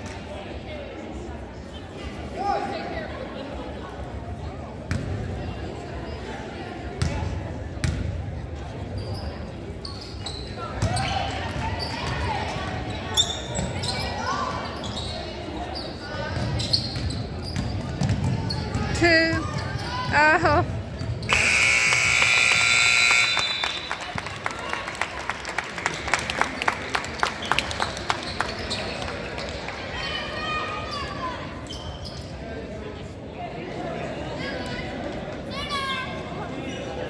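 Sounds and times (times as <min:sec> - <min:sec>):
sneakers squeaking on hardwood: 0:15.8 - 0:19.9
scoreboard buzzer: 0:21.3 - 0:23.9.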